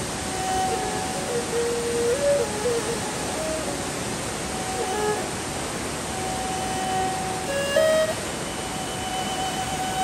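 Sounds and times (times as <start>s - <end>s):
river roaring over rocks: 0.0s - 10.0s
background music held notes: 0.2s - 10.0s.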